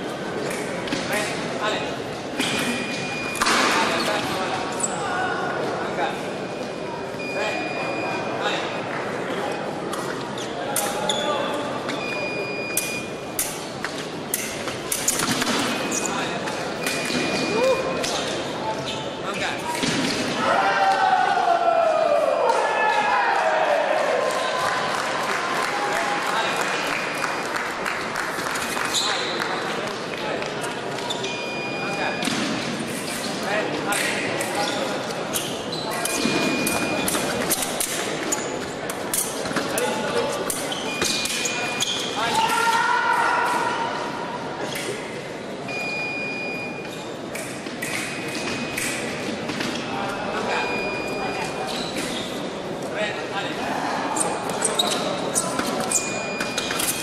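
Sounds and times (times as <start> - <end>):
short electronic beeps: 6.4 - 8.8, 11.9 - 13.2, 31.2 - 32.3, 35.9 - 37.2, 45.7 - 46.9, 50.5 - 51.6, 55.9 - 57.0.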